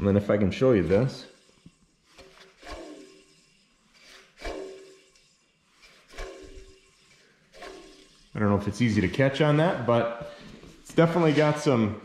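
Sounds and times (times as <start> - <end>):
pulley whirring with ringing tone: 0.0 - 9.1.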